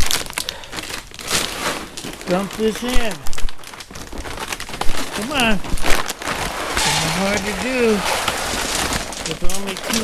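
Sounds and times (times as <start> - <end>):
plastic bag crinkling and rustling: 0.0 - 10.0.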